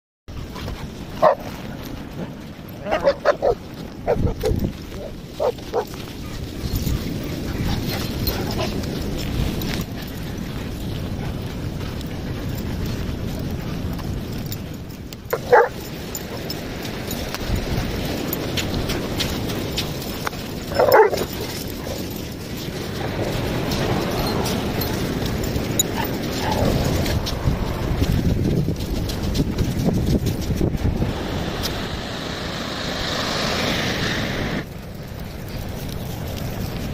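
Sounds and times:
wind rumble on microphone: 0.3s - 36.9s
dog barking: 1.2s - 1.5s, 2.8s - 5.9s, 15.3s - 15.8s, 20.7s - 22.0s
dogs barking: 1.2s - 1.5s, 2.7s - 8.9s, 15.3s - 16.6s, 20.7s - 22.2s, 25.6s - 27.1s.

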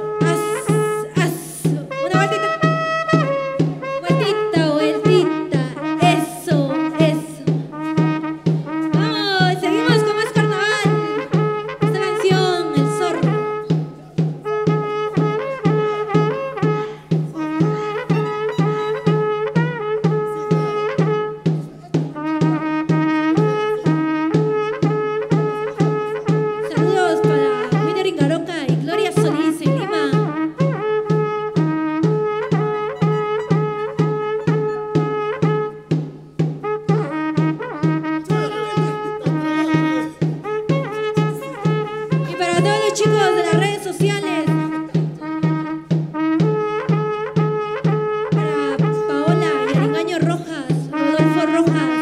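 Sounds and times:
clarinet melody: 0.0s - 52.0s
saxophone melody: 0.0s - 52.0s
bass drum beating: 1.2s - 52.0s.

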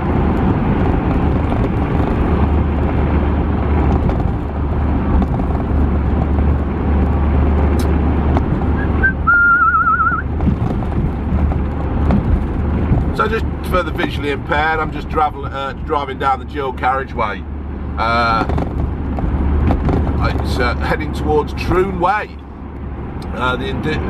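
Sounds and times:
van road and engine drone: 0.0s - 24.0s
short warbling whistle: 8.8s - 10.3s.

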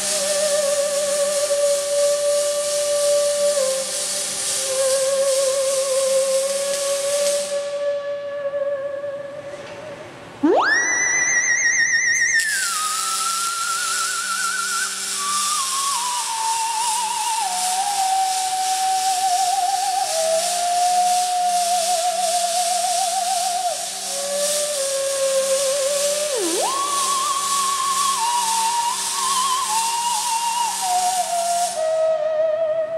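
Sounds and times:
welding arc hiss: 0.0s - 7.8s, 10.6s - 32.2s
theremin swooping with vibrato: 4.8s - 17.3s, 25.2s - 32.9s.

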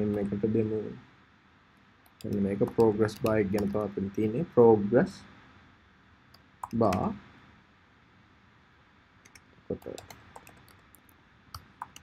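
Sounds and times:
computer keyboard typing: 2.1s - 4.3s, 9.3s - 12.0s.

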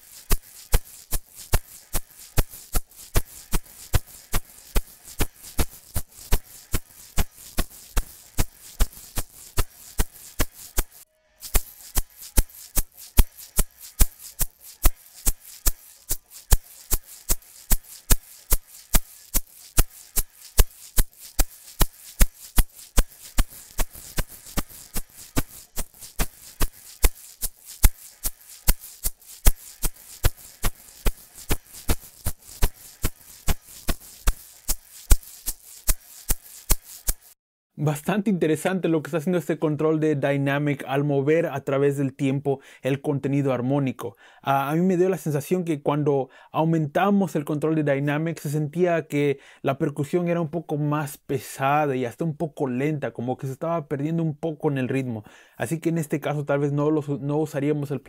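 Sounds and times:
egg shaker percussion: 0.0s - 37.4s.

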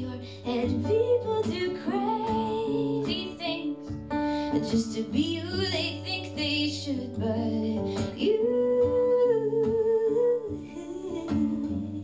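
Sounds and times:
guitar accompaniment: 0.0s - 12.0s
woman singing slow song: 0.0s - 12.0s.

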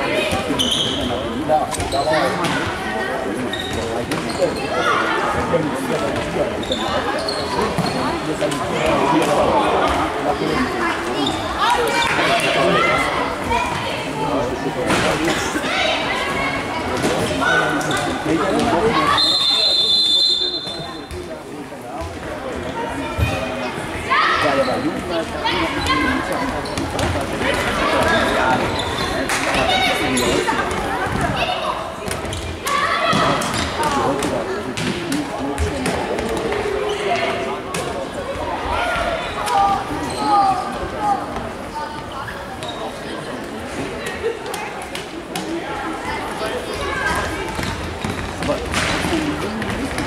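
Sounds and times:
whistle blast: 19.2s - 20.7s
people shouting in a hall: 32.6s - 34.0s.

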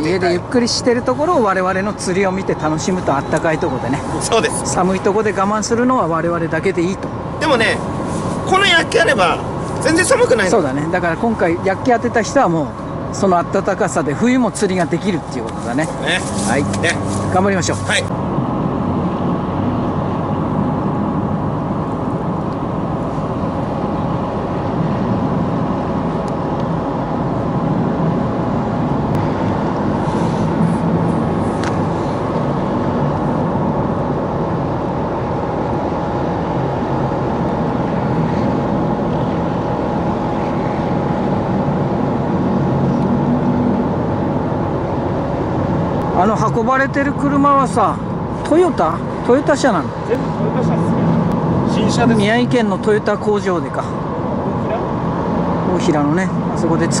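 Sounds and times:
engine running hum: 0.0s - 57.0s.

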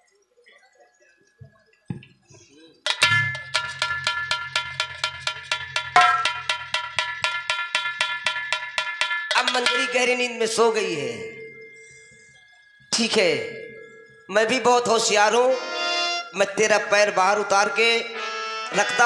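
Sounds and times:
bell-like metallic strikes: 2.9s - 15.5s.

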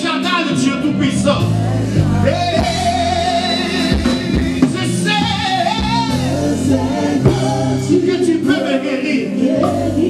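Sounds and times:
keyboard-led band: 0.0s - 10.0s
man singing gospel: 0.0s - 10.0s
backing singers: 1.5s - 10.0s.

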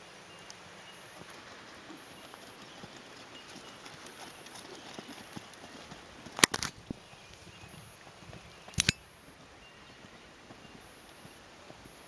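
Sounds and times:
horse hoofbeats on sand: 0.9s - 12.0s.

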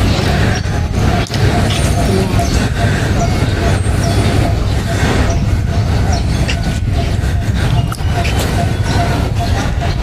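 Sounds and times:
faint voices: 0.0s - 10.0s
low outdoor rumble: 0.0s - 10.0s.

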